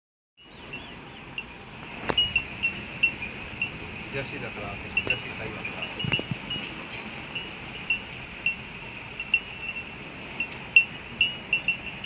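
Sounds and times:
small metal bells tinkling: 0.4 - 12.0.

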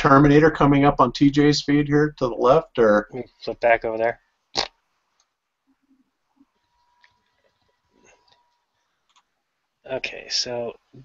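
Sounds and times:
faint steady tone: 1.4 - 11.0
faint scattered clicks: 6.5 - 9.3.

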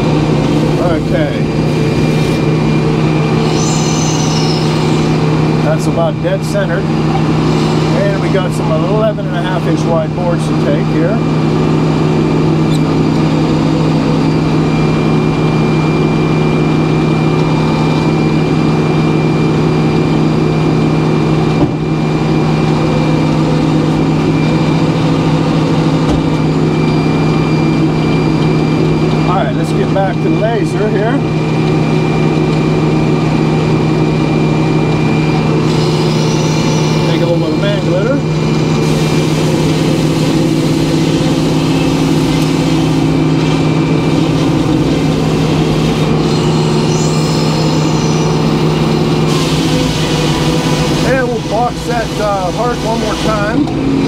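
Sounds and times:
sawmill blade sawing boards: 38.8 - 53.7.

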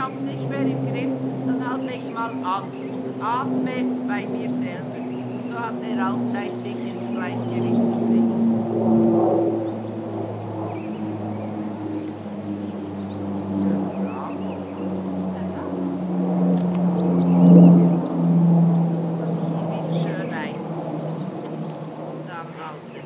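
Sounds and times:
engine drone: 0.0 - 23.0.

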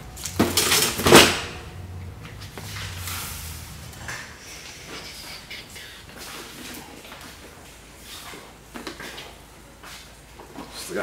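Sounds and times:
boxes clattering: 0.2 - 1.6
boxes knocking into wire cart: 0.4 - 1.6.

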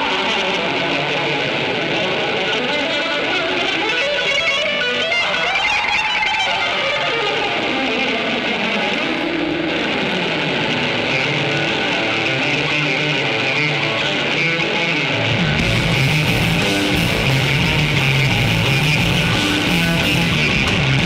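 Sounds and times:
electric guitar line: 0.0 - 21.0
live rock band playing: 0.0 - 21.0.

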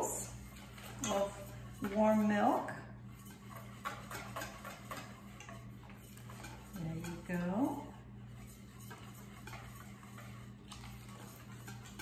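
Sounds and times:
utensil tapping metal bowl: 3.2 - 7.9.

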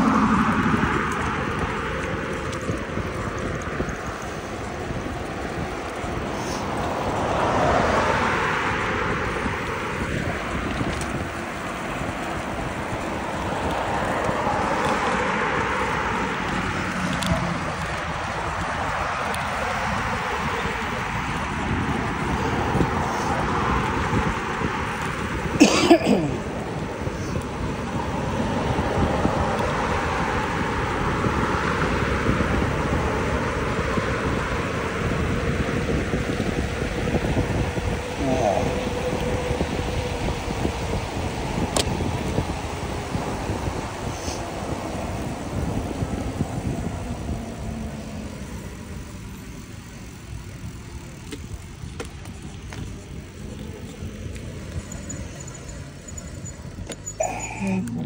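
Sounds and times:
road traffic passing: 0.0 - 58.0
wind rushing over microphone: 0.0 - 58.0.

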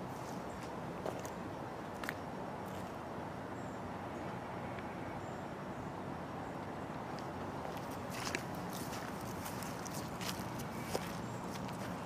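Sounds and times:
low rumble of distant noise: 0.0 - 12.0.

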